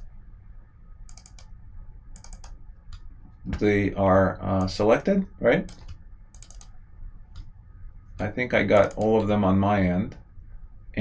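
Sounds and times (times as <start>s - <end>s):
computer mouse clicks: 1.1s - 1.5s, 2.2s - 3.1s, 5.7s - 7.5s, 8.7s - 9.3s.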